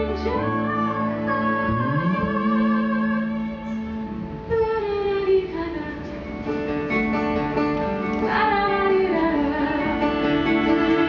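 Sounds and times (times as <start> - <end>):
woman singing into a microphone: 0.0 - 6.4, 8.2 - 11.0
instrumental accompaniment: 0.0 - 11.0.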